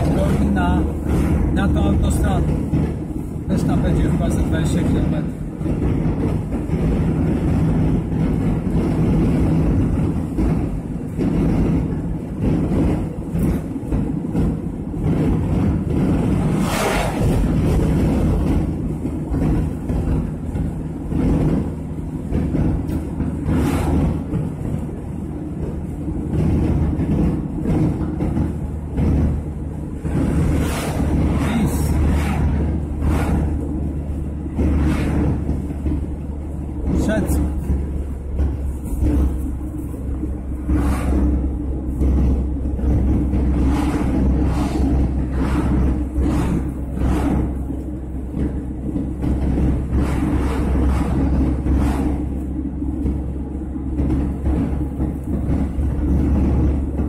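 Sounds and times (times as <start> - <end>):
engine and tyre rumble: 0.0 - 57.0
passing vehicles whooshing: 0.0 - 57.0.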